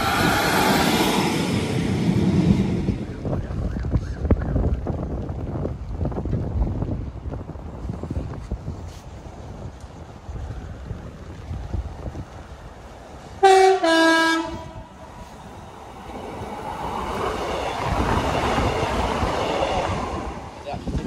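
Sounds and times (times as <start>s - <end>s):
wheels on rails: 0.0s - 13.8s
train engine passing: 0.0s - 21.0s
train two-tone horn: 13.4s - 14.9s.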